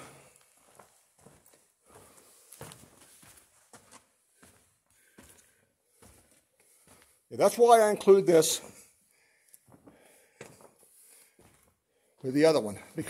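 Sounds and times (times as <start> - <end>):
footsteps on rocky ground: 0.6 - 7.1, 11.4 - 11.7.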